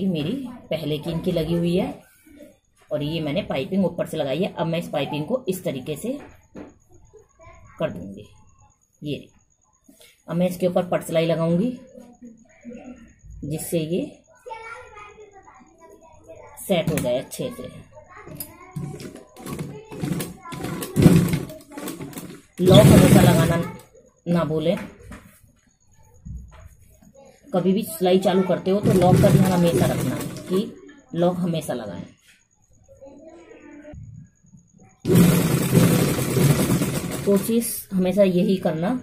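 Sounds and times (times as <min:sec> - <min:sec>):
sewing machine running fast: 0:19.4 - 0:23.7, 0:28.8 - 0:30.6, 0:35.1 - 0:37.7
person talking: 0:19.5 - 0:24.8, 0:27.6 - 0:32.1.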